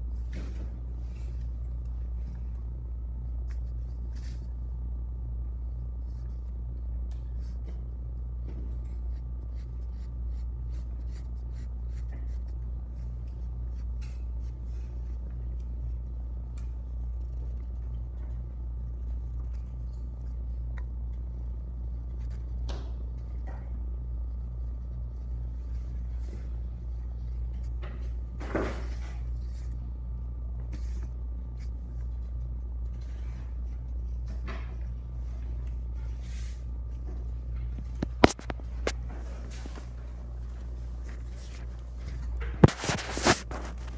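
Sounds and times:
low hum: 0.0s - 43.9s.

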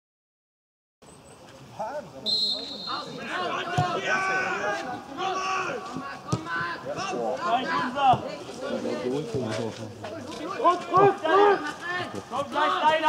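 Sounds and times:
voices calling out and talking: 1.1s - 13.0s.

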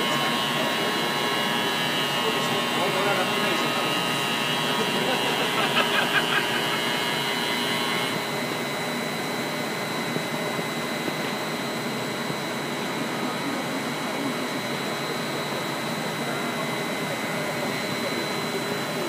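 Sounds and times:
machine hum and air rush: 0.0s - 19.0s
thin high whine: 0.0s - 19.0s.

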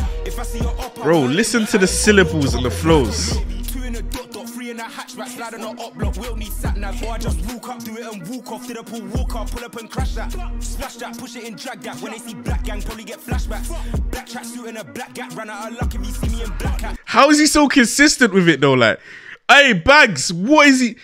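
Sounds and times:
person rapping over a beat: 0.0s - 17.0s
deep bass notes: 1.5s - 3.6s.

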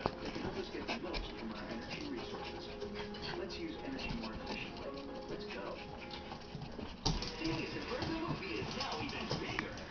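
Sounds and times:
puppies whimpering: 0.0s - 7.0s.

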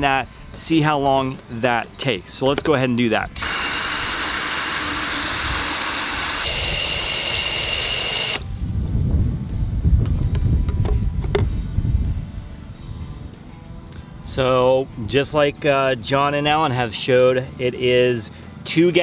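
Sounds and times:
sprayer jetting water into bucket: 3.4s - 8.4s
low rumbling: 8.4s - 15.0s.

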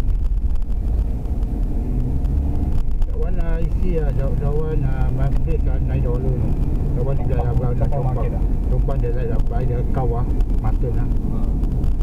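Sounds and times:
car engine and tyres rumbling: 0.0s - 12.0s
person speaking: 3.1s - 11.5s.

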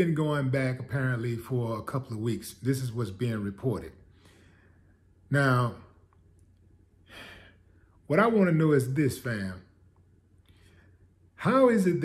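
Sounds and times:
man breathing: 4.0s - 5.2s, 7.0s - 8.1s, 10.4s - 11.3s.

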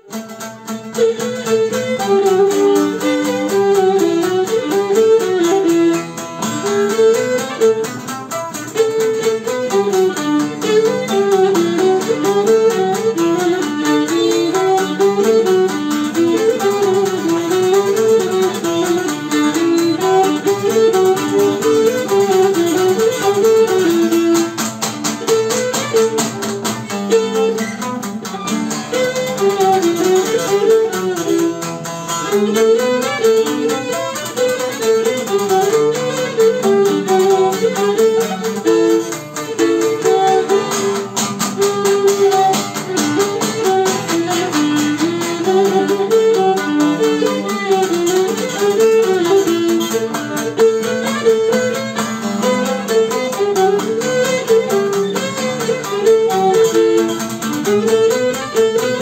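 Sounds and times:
lute accompaniment: 0.0s - 59.0s.

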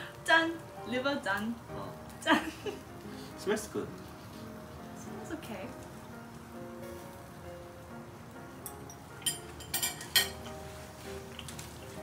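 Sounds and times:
background music with held tones: 0.0s - 12.0s
sharp clicks and crackles: 11.3s - 11.7s.

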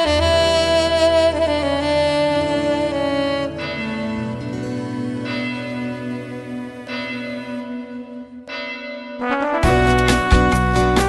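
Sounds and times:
church bell tolling: 3.4s - 10.5s.

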